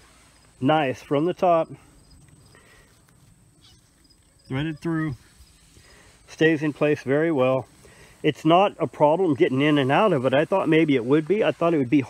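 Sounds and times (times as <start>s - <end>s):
crickets chirring: 0.1s - 6.5s.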